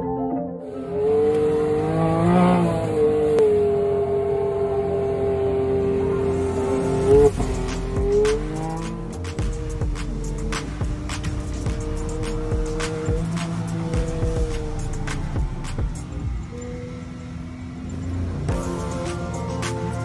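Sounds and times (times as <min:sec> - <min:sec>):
music: 0:00.0 - 0:01.3, 0:07.3 - 0:16.6, 0:18.5 - 0:20.0
engine running and accelerating: 0:00.6 - 0:20.0.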